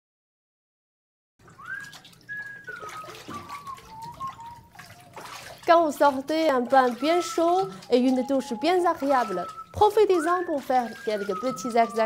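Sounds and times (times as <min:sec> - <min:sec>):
water trickling: 0:01.4 - 0:12.0
whistle-like melody: 0:01.6 - 0:05.2, 0:06.7 - 0:12.0.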